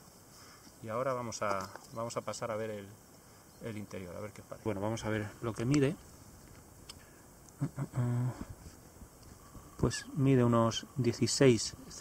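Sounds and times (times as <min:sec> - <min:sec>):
man's hesitation sound: 0:07.6 - 0:08.6.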